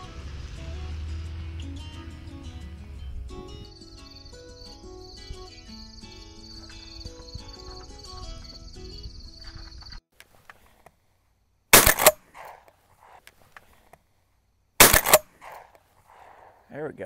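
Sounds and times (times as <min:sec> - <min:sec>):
music: 0:00.0 - 0:09.7
shotgun shots: 0:11.8 - 0:12.6, 0:14.8 - 0:15.7.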